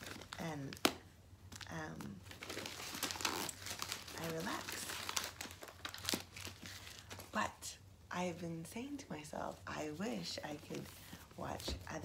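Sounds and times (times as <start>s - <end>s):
plastic packaging crinkling: 0.0s - 7.4s.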